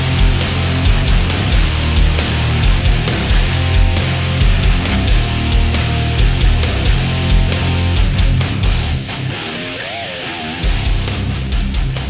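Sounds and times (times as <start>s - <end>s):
bending electric guitar line: 0.0s - 12.0s
hard rock music: 0.0s - 12.0s.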